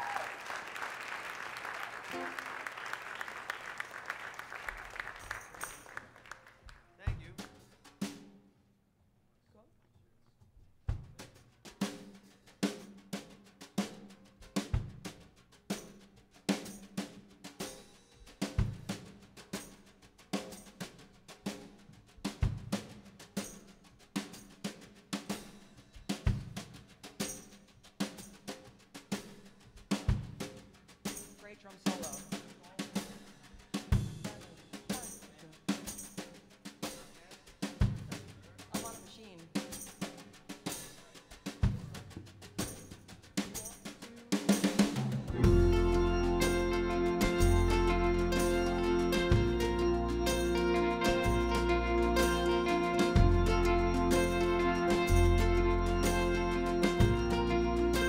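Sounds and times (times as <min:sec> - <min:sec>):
live band playing: 0:01.0 - 0:06.4, 0:29.9 - 0:58.0
bass drum accents: 0:45.1 - 0:58.0.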